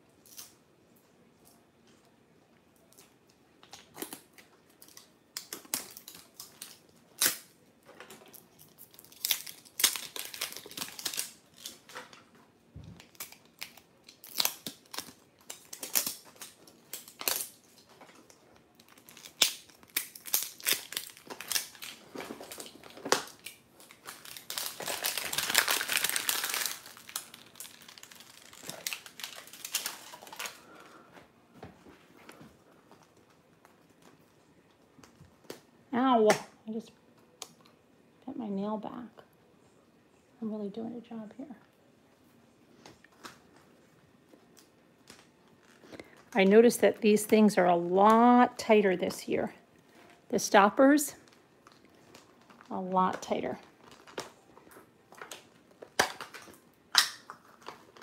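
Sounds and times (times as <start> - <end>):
plastic film crinkling: 2.8 - 12.3, 13.0 - 31.1, 43.0 - 48.7, 50.9 - 58.0.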